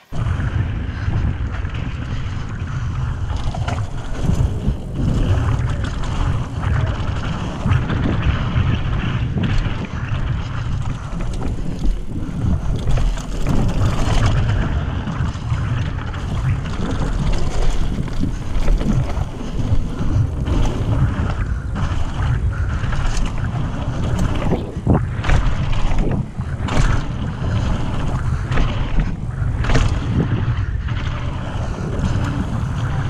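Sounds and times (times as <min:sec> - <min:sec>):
tyres running over dirt: 0:00.0 - 0:33.0
wind buffeting microphone: 0:00.0 - 0:33.0
bike knocks and rattles: 0:00.1 - 0:33.0.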